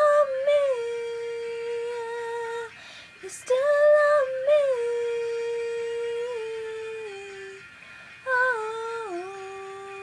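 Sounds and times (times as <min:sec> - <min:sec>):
girl singing unaccompanied: 0:00.0 - 0:10.0.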